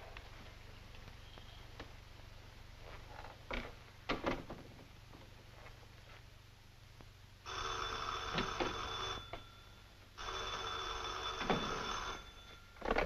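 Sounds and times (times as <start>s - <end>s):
telephone bell ringing: 7.4s - 13.0s.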